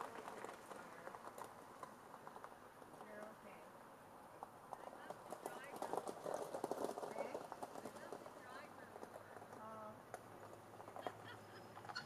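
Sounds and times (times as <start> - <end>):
gravel crunching: 0.0 - 12.0.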